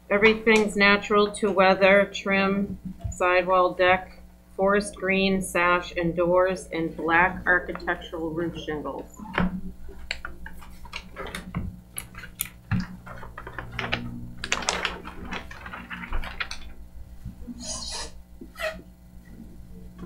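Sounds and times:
low room hum: 0.0 - 20.0
paper sheets rustling and crinkling: 9.9 - 17.4.

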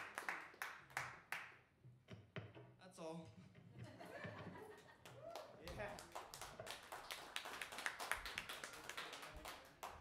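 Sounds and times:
audience applause: 0.0 - 0.6, 5.3 - 10.0.

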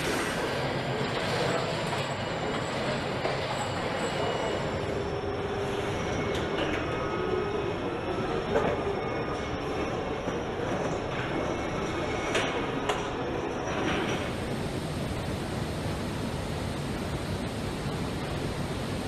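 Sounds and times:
rolling mechanical rumble: 4.6 - 19.0.

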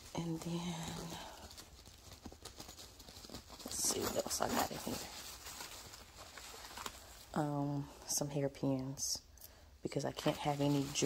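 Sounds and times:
items rummaged in fabric bag: 0.0 - 8.3, 9.9 - 11.0.

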